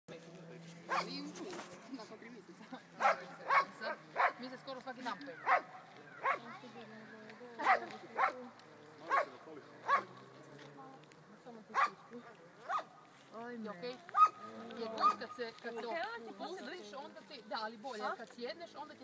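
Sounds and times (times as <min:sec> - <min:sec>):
dog barking: 0:00.9 - 0:01.2, 0:03.0 - 0:04.5, 0:05.4 - 0:06.5, 0:07.6 - 0:10.1, 0:11.7 - 0:12.0, 0:12.6 - 0:12.9, 0:14.2 - 0:15.2.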